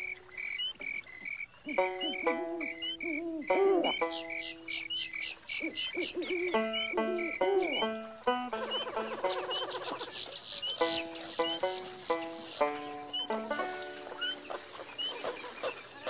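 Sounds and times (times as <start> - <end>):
high insect chirps: 0.0 - 7.9
frogs croaking: 0.0 - 16.0.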